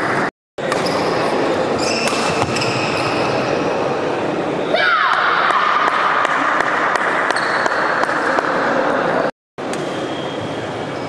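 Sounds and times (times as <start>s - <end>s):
shoe squeaks: 0.7s - 3.7s, 7.3s - 8.0s, 9.8s - 11.0s
spectator chatter: 3.5s - 9.3s.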